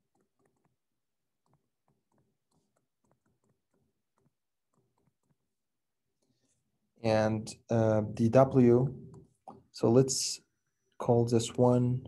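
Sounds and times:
stylus tapping on tablet screen: 0.0s - 5.8s.

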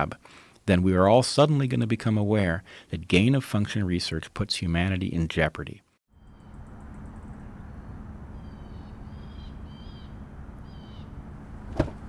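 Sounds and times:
bird chirps: 6.1s - 11.2s
low background rumble: 6.2s - 12.0s.

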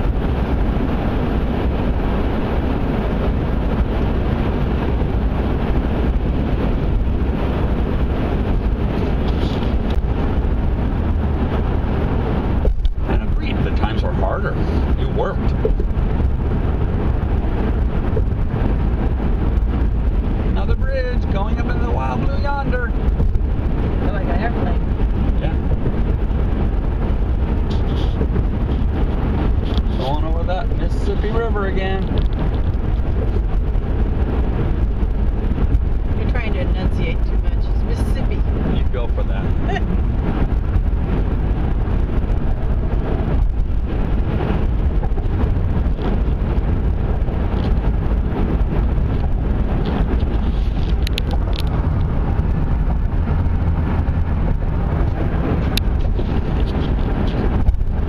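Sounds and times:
car interior road rumble: 0.0s - 58.0s.

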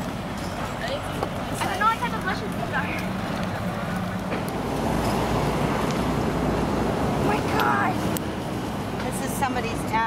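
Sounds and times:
traffic rumble and hiss: 0.0s - 10.0s.

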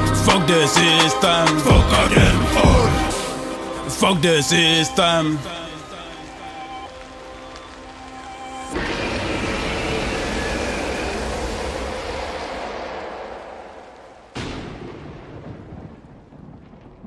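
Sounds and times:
thunder rolling: 8.7s - 17.0s
sharp thunder crack: 8.8s - 17.0s.

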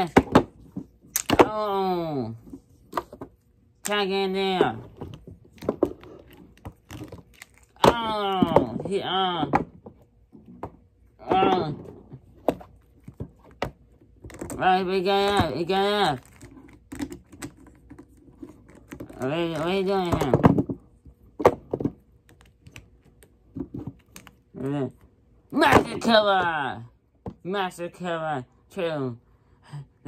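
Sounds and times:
plastic toys clicking and tapping: 0.0s - 1.5s.

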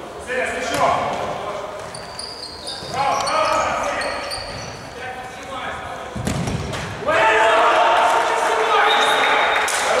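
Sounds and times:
shoe squeaks: 1.8s - 5.0s
players shouting: 7.0s - 10.0s.

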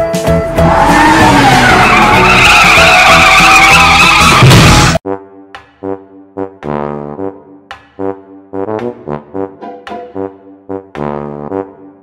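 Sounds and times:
car tyres screeching: 0.6s - 4.9s
children's music: 9.5s - 10.6s.

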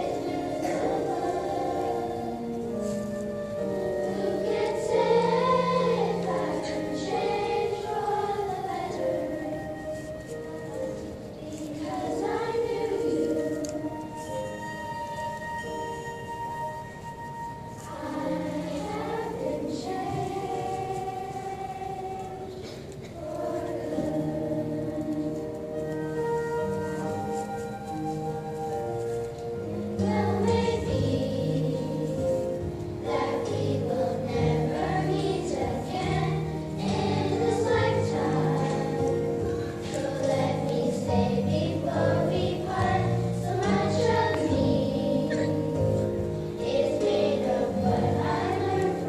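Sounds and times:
children's choir singing: 0.0s - 49.0s.

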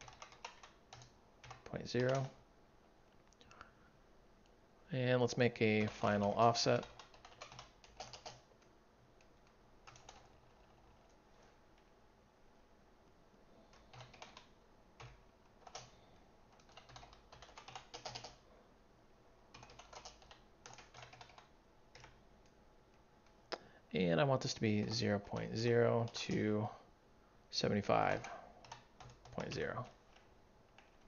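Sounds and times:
faint keyboard typing: 0.0s - 2.4s, 5.4s - 11.9s, 13.6s - 18.4s, 19.5s - 23.7s, 24.8s - 26.5s, 27.8s - 31.0s.

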